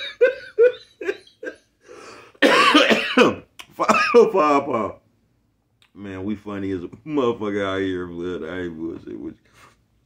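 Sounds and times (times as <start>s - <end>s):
man laughing: 0.0s - 1.8s
loud cough: 2.4s - 4.3s.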